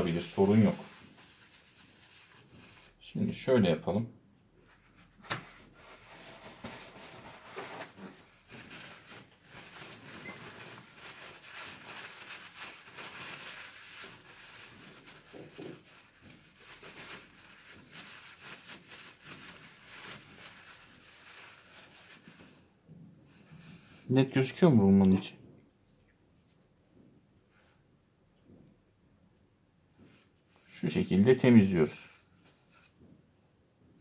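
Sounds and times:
paper towel rustling: 0.0 - 3.5, 4.6 - 25.3, 29.9 - 33.2.

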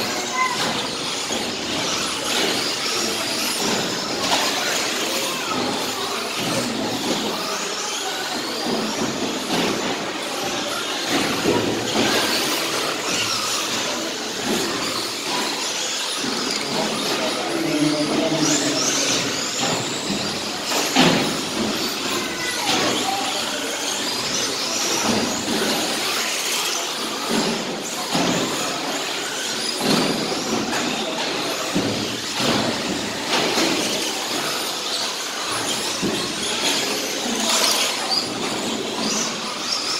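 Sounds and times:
rc car motors whining: 0.0 - 39.9.

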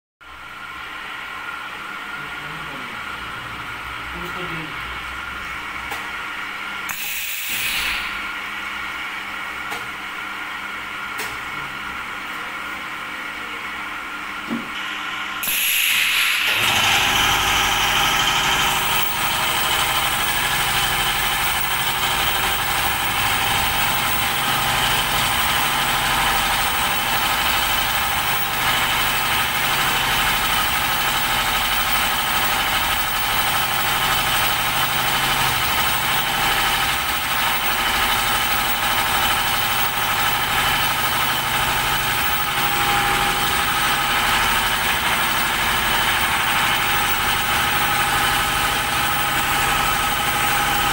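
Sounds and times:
machine motor rumble and whine: 0.3 - 50.9.

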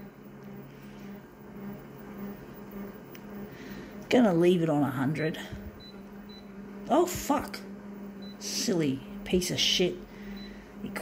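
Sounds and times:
faint pulsing buzz: 0.0 - 11.0
photocopier electrical hum: 0.0 - 11.0.

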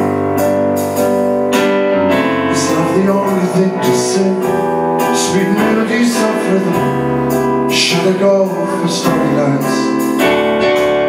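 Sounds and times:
synthesizer chords: 0.0 - 11.0.

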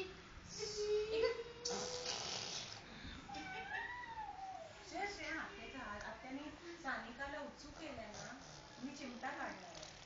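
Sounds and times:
baby blowing raspberry: 1.6 - 2.9, 7.8 - 10.0.

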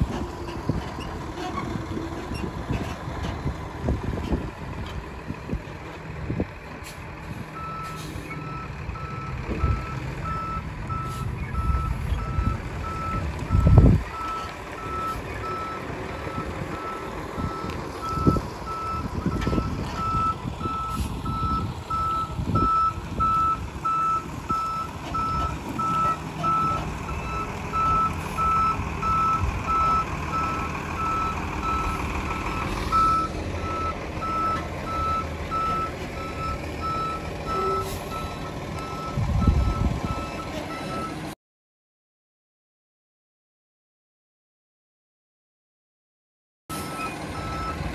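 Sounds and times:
truck engine running: 0.0 - 41.3, 46.7 - 47.9
truck reversing alarm beeping: 7.6 - 41.3, 46.7 - 47.9.

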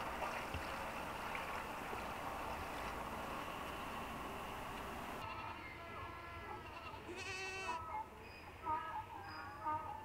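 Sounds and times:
animal bleating: 5.2 - 7.9.

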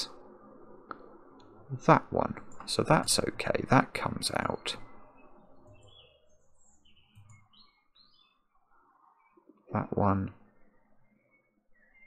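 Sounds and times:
faint bird chirps: 4.0 - 12.0.

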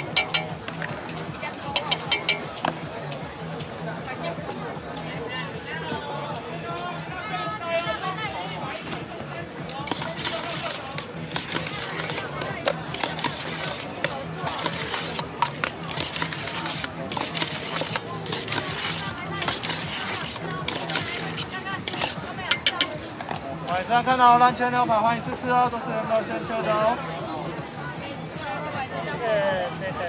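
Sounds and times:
metal spoon clinking in steel bowl: 0.0 - 0.6, 1.8 - 2.6, 9.7 - 23.0
background music: 0.0 - 30.0.

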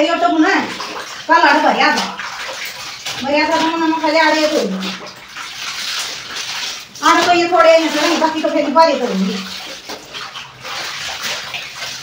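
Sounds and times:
woman talking: 0.0 - 2.2, 3.2 - 5.0, 7.0 - 9.5
wet fabric sloshing in water: 0.0 - 12.0.

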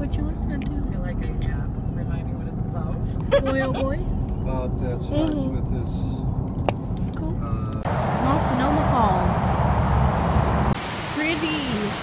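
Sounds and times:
car road rumble: 0.0 - 12.0
person speaking: 5.1 - 5.6
waterfall rushing: 10.7 - 12.0.

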